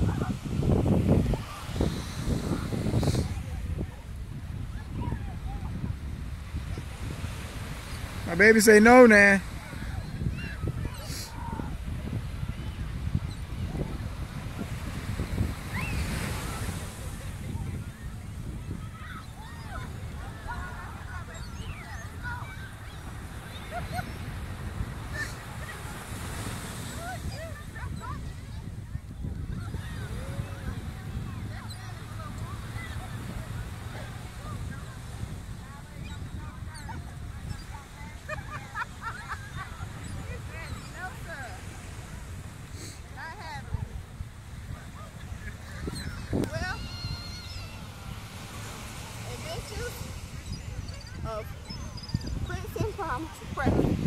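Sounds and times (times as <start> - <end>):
ocean surf: 0.0 - 54.0
wind: 0.0 - 54.0.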